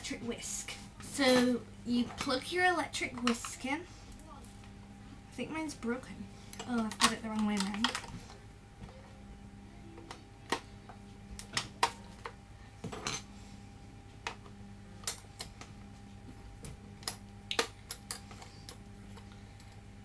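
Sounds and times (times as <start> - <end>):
faint steady hum: 0.0 - 20.0.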